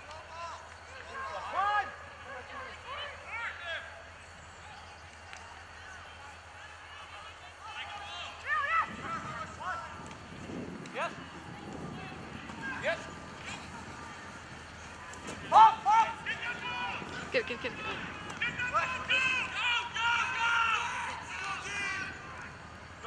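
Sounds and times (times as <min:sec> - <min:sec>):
people shouting: 0:00.0 - 0:23.0.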